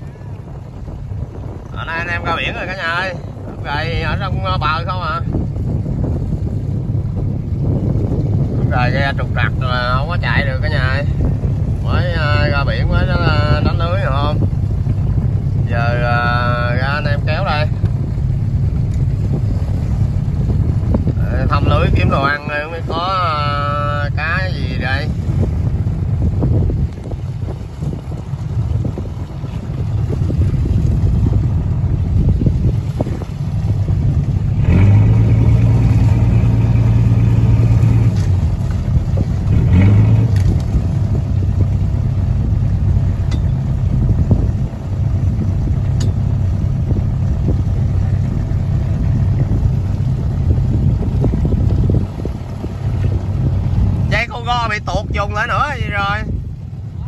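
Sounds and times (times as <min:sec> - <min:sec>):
boat engine running: 0:00.0 - 0:57.0
water washing along hull: 0:00.0 - 0:57.0.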